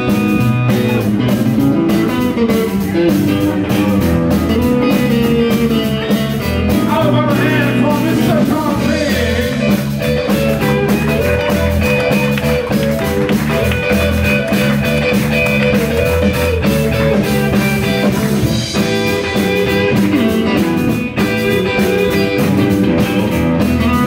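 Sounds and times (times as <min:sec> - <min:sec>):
blues band playing: 0:00.0 - 0:24.0
electric guitar: 0:00.0 - 0:24.0.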